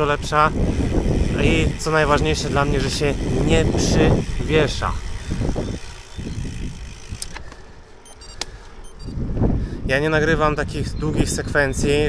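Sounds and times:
wind rumble on microphone: 0:00.0 - 0:07.6, 0:08.8 - 0:12.0
tyre and road noise: 0:00.0 - 0:09.9.

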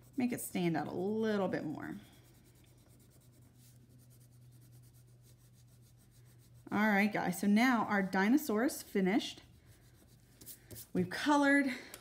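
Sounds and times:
colouring strokes on paper: 0:00.0 - 0:11.1
low steady hum: 0:00.0 - 0:12.0.

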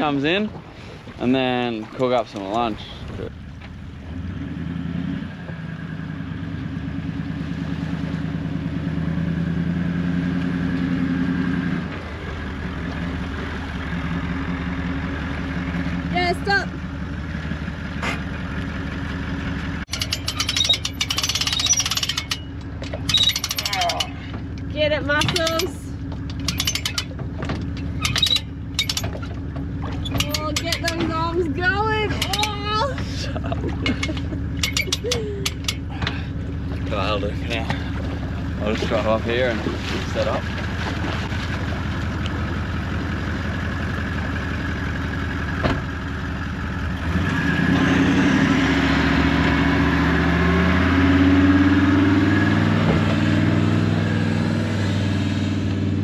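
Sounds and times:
winch ratcheting clicks: 0:19.9 - 0:31.3, 0:32.1 - 0:33.0, 0:33.8 - 0:36.2.

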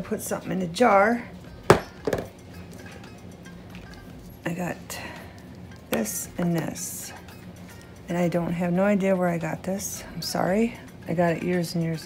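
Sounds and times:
quiet background music: 0:00.0 - 0:12.0
small items clattering on table: 0:01.7 - 0:02.3.

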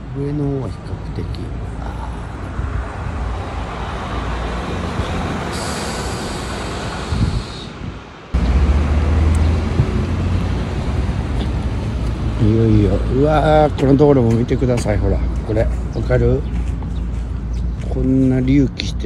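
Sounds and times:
road traffic rushing: 0:00.0 - 0:19.0
hiss: 0:05.5 - 0:07.8
deep rumble: 0:08.3 - 0:13.8.

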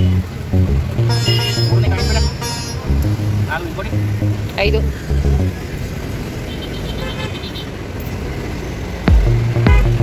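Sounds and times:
busy road traffic: 0:00.0 - 0:10.0.

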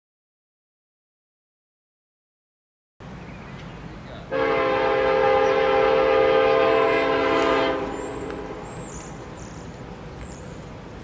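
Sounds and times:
locomotive air horn blast: 0:04.3 - 0:08.9.

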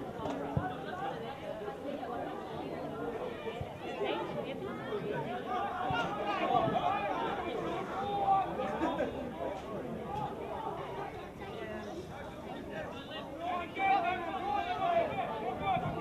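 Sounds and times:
voices calling out and chattering: 0:00.0 - 0:16.0.

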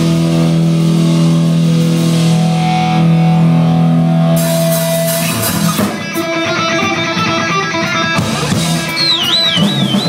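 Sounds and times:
distorted guitar and bass note: 0:00.0 - 0:10.0.

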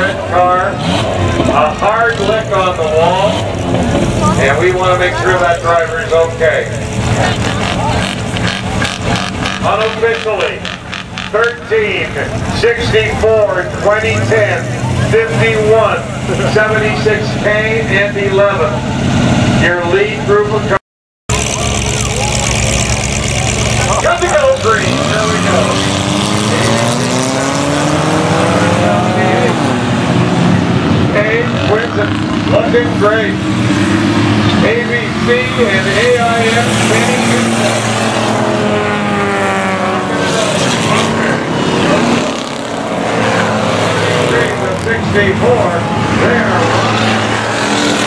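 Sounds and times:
car engines low drone: 0:00.0 - 0:48.0.

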